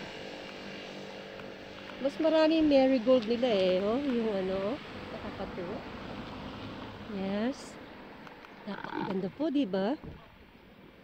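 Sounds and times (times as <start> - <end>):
distant traffic: 0.0 - 11.0.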